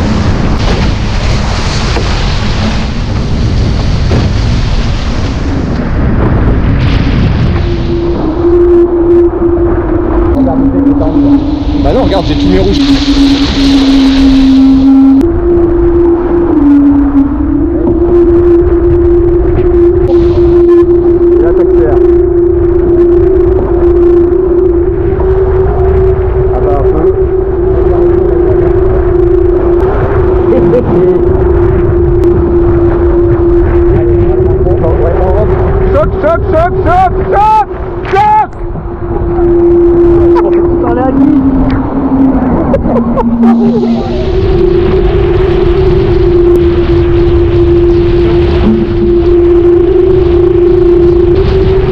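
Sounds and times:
water rushing past hull: 0.0s - 21.4s, 35.3s - 51.9s
loud steady humming tone: 0.0s - 51.9s
wind rushing: 0.0s - 51.9s.

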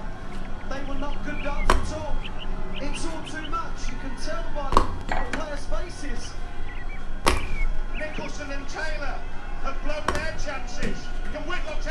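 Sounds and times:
commentator talking: 0.5s - 11.9s.

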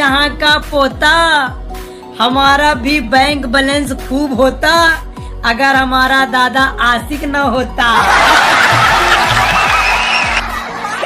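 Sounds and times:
background music with steady beat: 0.0s - 11.0s
audience laughter: 8.0s - 11.0s.

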